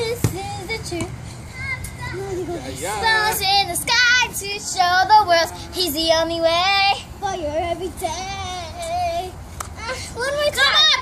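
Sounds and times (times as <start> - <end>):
girls singing and vocalizing: 0.0 - 11.0.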